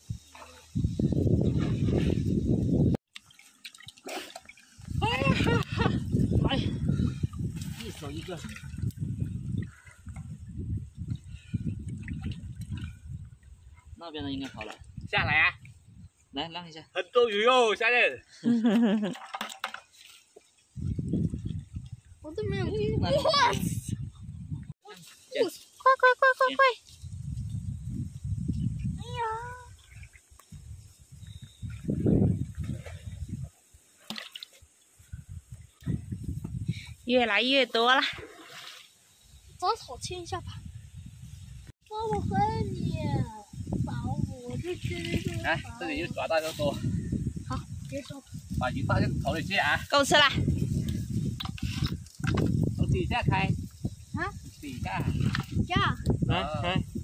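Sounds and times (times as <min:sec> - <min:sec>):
gusty wind on microphone: 0:00.0 - 0:03.0, 0:04.8 - 0:14.0, 0:14.8 - 0:16.5, 0:20.7 - 0:24.8, 0:26.5 - 0:33.7, 0:35.0 - 0:37.3, 0:39.2 - 0:57.0
water splashing: 0:03.1 - 0:10.4, 0:11.0 - 0:15.8, 0:18.5 - 0:23.9, 0:29.2 - 0:30.8, 0:31.6 - 0:36.4, 0:37.1 - 0:40.1.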